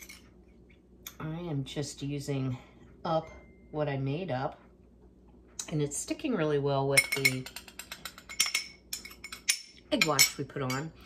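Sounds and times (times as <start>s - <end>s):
metal spoon clinking glass bowl: 7.0s - 10.9s.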